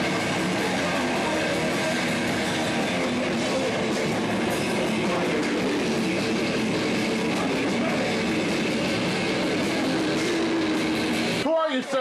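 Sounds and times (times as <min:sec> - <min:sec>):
rock band playing: 0:00.0 - 0:11.5.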